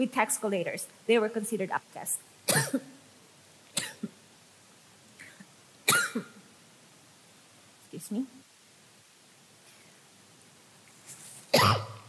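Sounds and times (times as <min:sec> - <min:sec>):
person coughing: 0:02.5 - 0:02.9, 0:05.3 - 0:06.4, 0:11.5 - 0:12.0.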